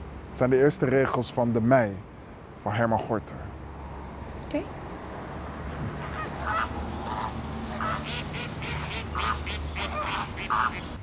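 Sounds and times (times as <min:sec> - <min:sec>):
flamingos honking: 0:05.9 - 0:11.0.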